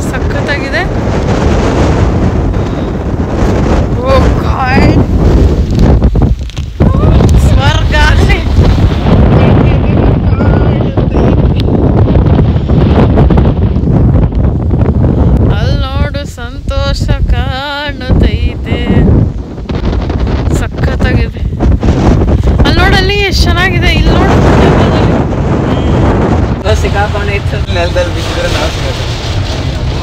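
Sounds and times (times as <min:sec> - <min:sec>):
strong gusty wind on microphone: 0:00.0 - 0:30.0.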